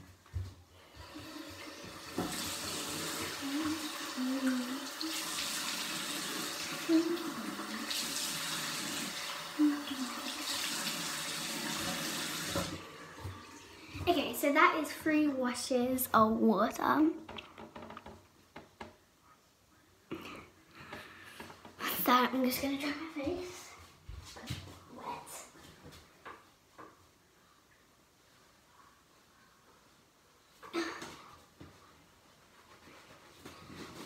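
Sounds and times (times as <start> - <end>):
cloth towel rustling: 31.1 - 34.0.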